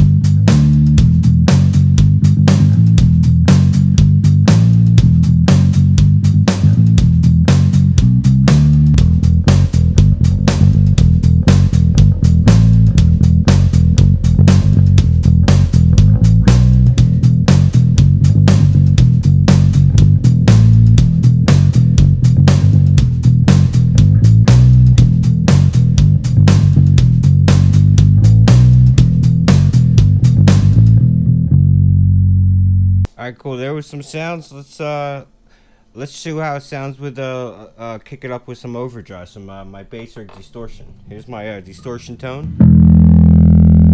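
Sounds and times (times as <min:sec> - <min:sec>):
electric bass guitar plucked: 0:00.0 - 0:33.1, 0:42.4 - 0:43.9.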